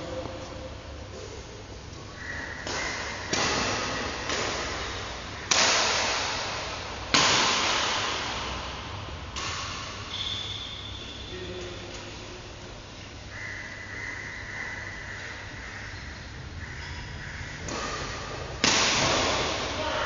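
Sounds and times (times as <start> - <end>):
badminton racket hitting shuttlecock: 2.6 - 10.6, 17.6 - 19.9.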